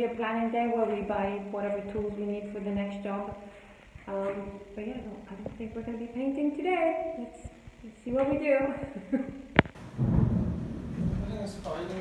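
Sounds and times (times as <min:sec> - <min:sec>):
sharp thunder snap: 0:09.8 - 0:12.0
thunder rumbling: 0:09.8 - 0:12.0.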